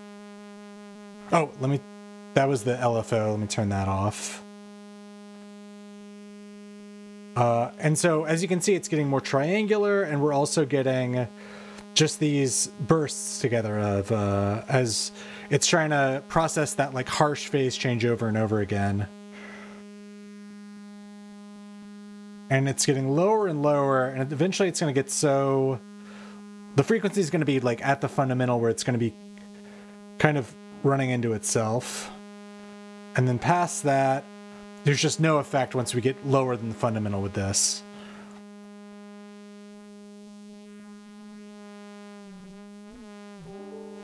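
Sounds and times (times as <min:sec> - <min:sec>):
sawtooth synth tone: 0:00.0 - 0:04.5, 0:33.1 - 0:44.0
buzzing synth tone with phaser: 0:00.0 - 0:44.0
faint hiss: 0:02.4 - 0:04.5, 0:07.4 - 0:20.0, 0:22.6 - 0:32.2, 0:33.2 - 0:38.5.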